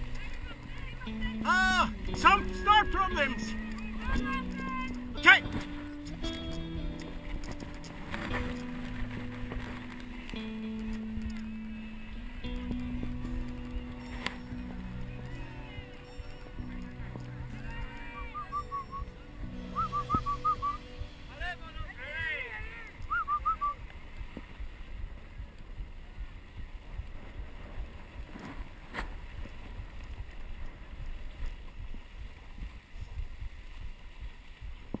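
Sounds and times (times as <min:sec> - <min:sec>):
sled runners rumbling on snow: 0:00.0 - 0:35.0
high warbling calls: 0:01.8 - 0:06.0, 0:13.7 - 0:21.4, 0:22.8 - 0:23.8
wind on microphone: 0:22.5 - 0:35.0.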